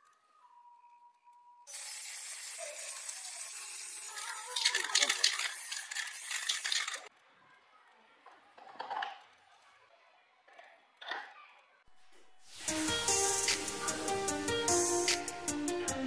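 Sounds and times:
aerosol spray can hissing: 1.7 - 7.1, 12.5 - 15.5.

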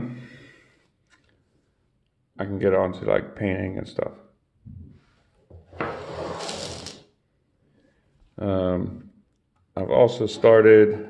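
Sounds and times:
rustling scrape against bench: 5.8 - 7.0.

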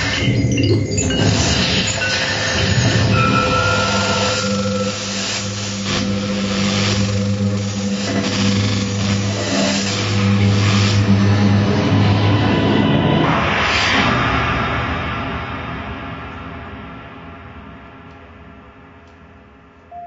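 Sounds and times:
dense electronic noise texture: 0.0 - 19.9
steady low drone: 2.0 - 19.6.

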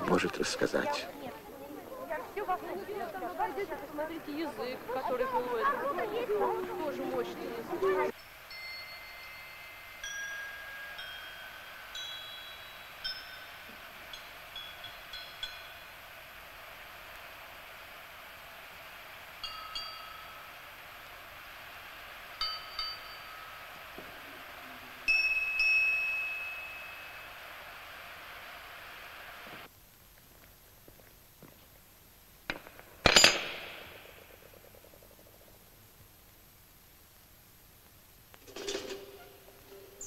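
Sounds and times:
small hanging bells ringing: 8.1 - 16.7, 19.4 - 21.2, 22.3 - 27.8.

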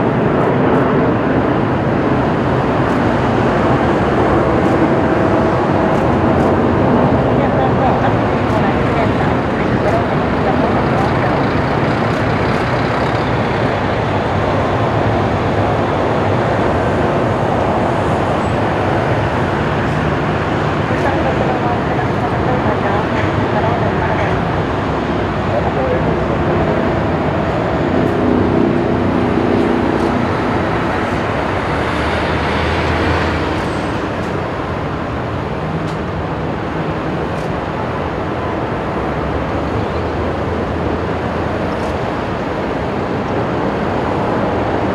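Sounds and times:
jet engines at climb power: 0.0 - 44.9.

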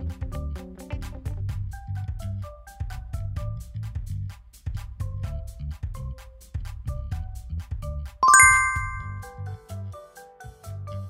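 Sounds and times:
bell-like chime: 8.2 - 9.3.

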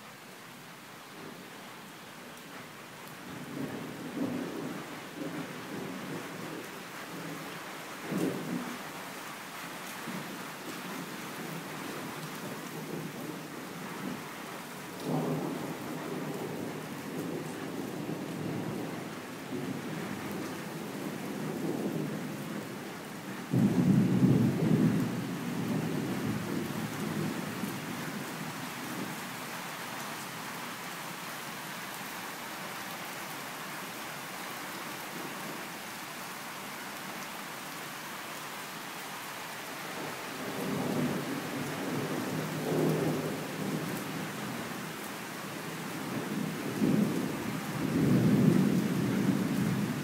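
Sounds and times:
heavy rain hissing: 0.0 - 50.0
rolling thunder: 23.5 - 28.0.

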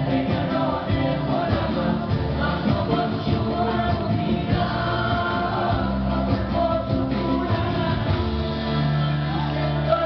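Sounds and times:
amplified live band music: 0.0 - 10.0
woman singing into microphone: 0.0 - 10.0.

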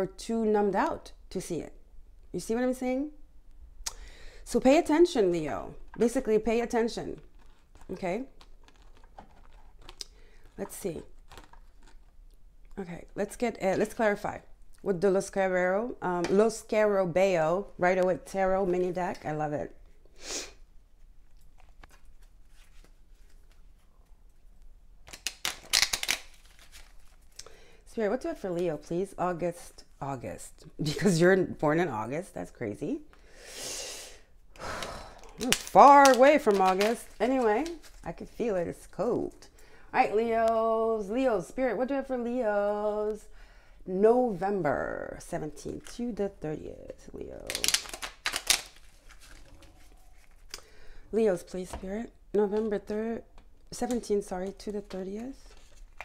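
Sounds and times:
cards being shuffled: 21.3 - 23.9, 25.1 - 27.4, 35.4 - 38.0, 47.4 - 50.6.

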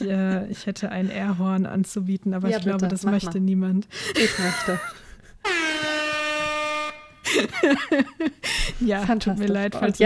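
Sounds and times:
person speaking: 2.2 - 3.6
air horn blast: 5.4 - 7.3.

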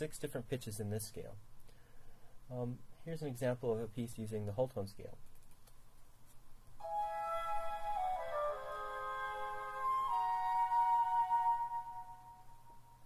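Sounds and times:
whole-tone music with sustained notes: 6.8 - 13.0.

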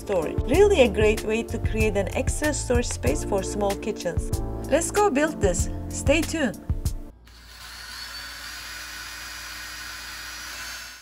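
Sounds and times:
power drill whirring: 7.3 - 11.0.

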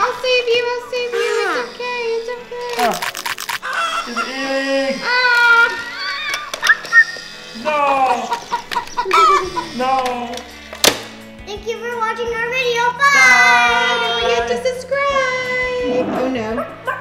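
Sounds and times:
background music: 0.0 - 17.0
playful squeals and cries: 0.8 - 10.5, 13.0 - 14.5
burst of clicks: 2.7 - 3.7.

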